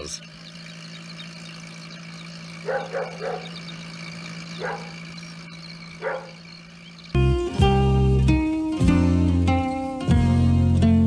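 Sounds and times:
steady low hum: 0:00.0 - 0:11.0
dog barking: 0:02.6 - 0:03.6, 0:04.6 - 0:05.0, 0:06.0 - 0:06.4
plucked-string music: 0:07.2 - 0:11.0.

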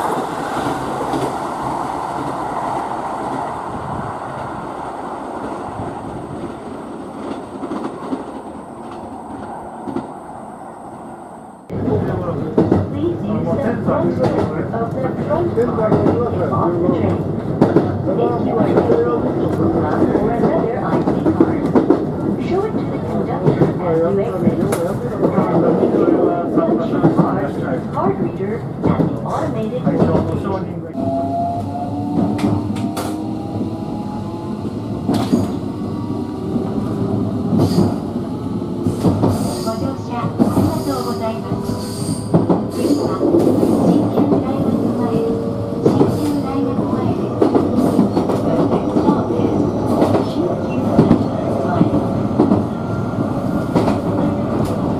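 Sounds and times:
train running rumble: 0:26.8 - 0:54.9.

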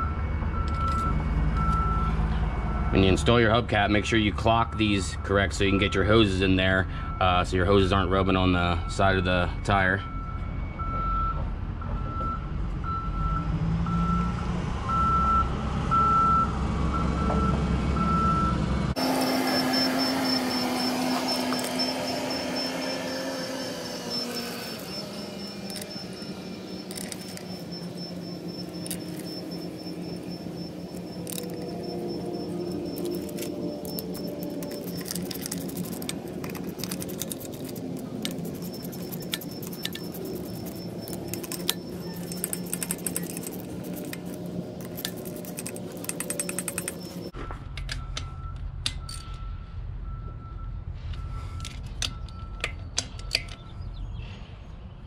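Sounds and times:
vehicle reversing alarm beeps: 0:00.0 - 0:54.5
low engine rumble: 0:14.9 - 0:55.0
faint steady high tone: 0:19.0 - 0:49.6
hand ratchet clicking: 0:24.1 - 0:47.3.

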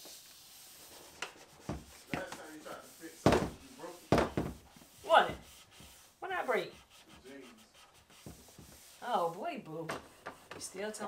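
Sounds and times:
cloth rubbing plastic: 0:00.0 - 0:09.4.

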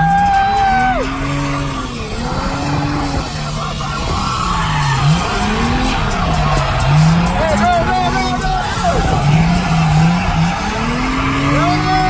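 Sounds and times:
car engines revving: 0:00.0 - 0:12.0
tyres skidding: 0:00.0 - 0:12.0.

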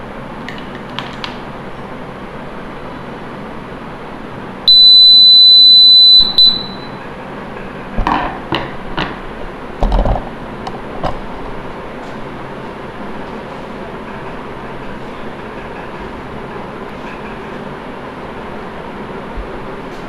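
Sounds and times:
high-pitched buzzer beep: 0:04.7 - 0:07.0.

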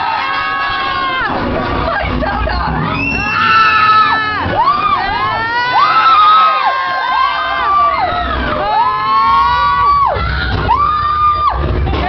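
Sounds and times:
riders screaming: 0:00.0 - 0:11.6.

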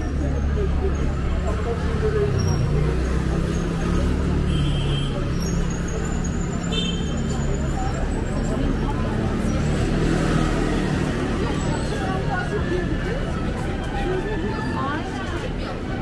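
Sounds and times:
passers-by talking: 0:00.0 - 0:16.0.

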